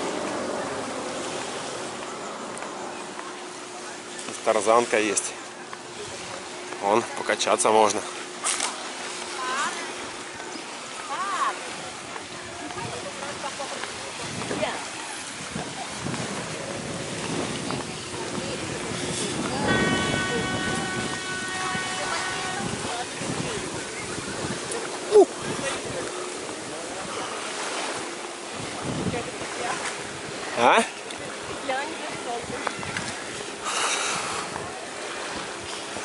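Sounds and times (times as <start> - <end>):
gentle surf: 0.0 - 36.0
people's voices: 0.0 - 36.0
waves washing onto beach: 0.0 - 36.0
wind hiss: 12.8 - 36.0.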